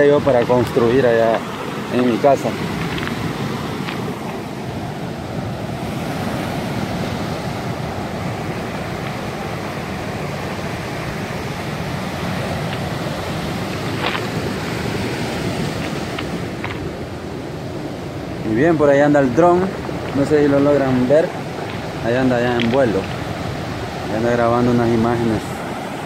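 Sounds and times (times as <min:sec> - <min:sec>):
surf washing over stones: 0:00.0 - 0:26.0.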